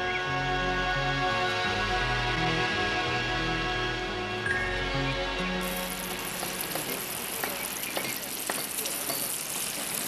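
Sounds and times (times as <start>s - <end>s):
sausages sizzling on a grill: 5.6s - 10.0s.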